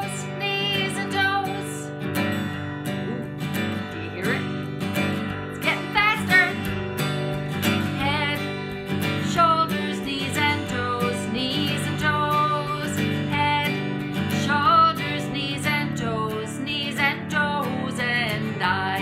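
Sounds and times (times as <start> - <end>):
woman singing: 0.0 - 2.0, 5.4 - 6.8, 7.5 - 19.0
acoustic guitar strumming: 0.0 - 19.0.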